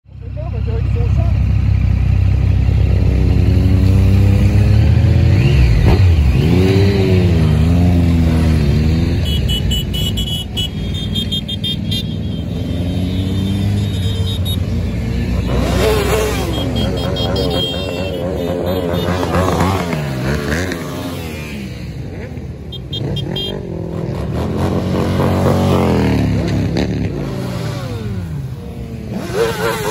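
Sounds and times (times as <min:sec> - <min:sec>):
motorcycles riding past: 0:00.3 - 0:29.9.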